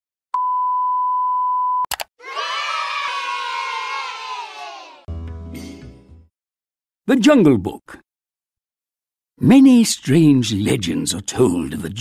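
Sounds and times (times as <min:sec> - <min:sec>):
children cheering and shouting: 0:02.2 - 0:05.1.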